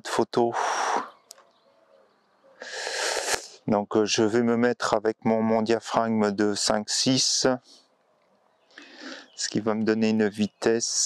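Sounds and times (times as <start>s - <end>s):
loud breathy hiss: 0.6s - 1.1s, 2.6s - 3.6s, 8.8s - 9.3s.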